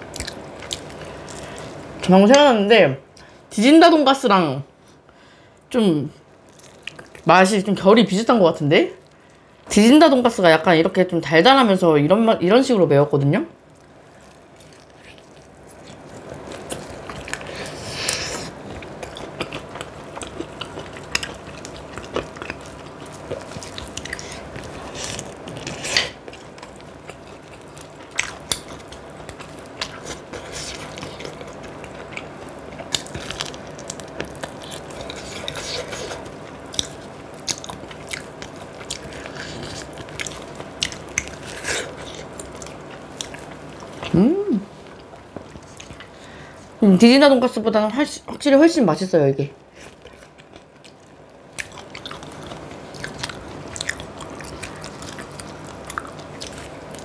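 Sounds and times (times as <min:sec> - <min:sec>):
chewing fried chicken: 0:00.0 - 0:02.5, 0:06.3 - 0:08.3, 0:13.5 - 0:46.7, 0:49.6 - 0:57.0.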